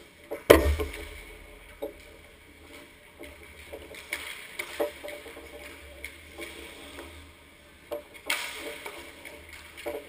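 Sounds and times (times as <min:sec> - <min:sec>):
steady low hum: 0:00.1 - 0:03.5
hockey sticks and pucks clacking: 0:07.9 - 0:10.0.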